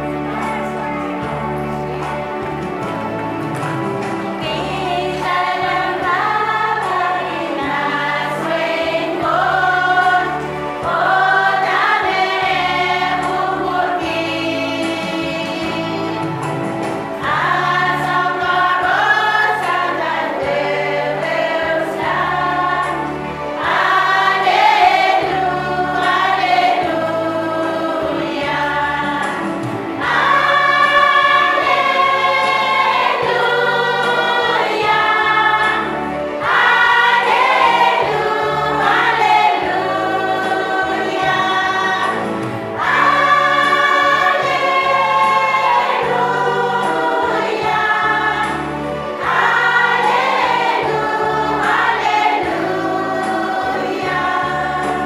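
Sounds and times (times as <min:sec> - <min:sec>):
choir singing: 0:00.0 - 0:55.0.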